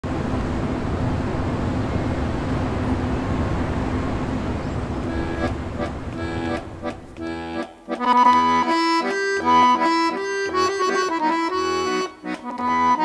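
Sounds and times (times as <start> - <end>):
city traffic: 0.0 - 13.0
accordion notes: 5.0 - 13.0.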